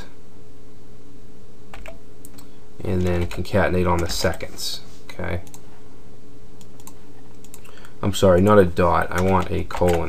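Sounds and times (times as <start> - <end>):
steady low hum: 0.0 - 10.0
computer keyboard keystrokes: 1.7 - 2.5, 6.6 - 7.7, 9.1 - 10.0.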